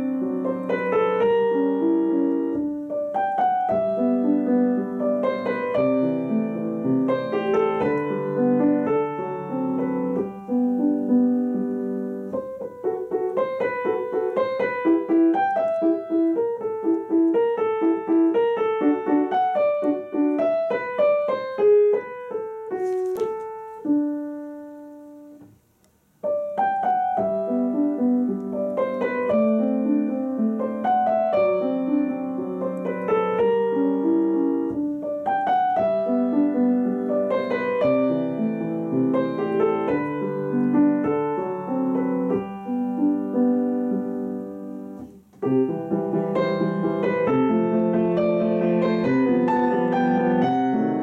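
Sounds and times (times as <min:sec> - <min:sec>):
grand piano melody: 0:00.0 - 0:51.0.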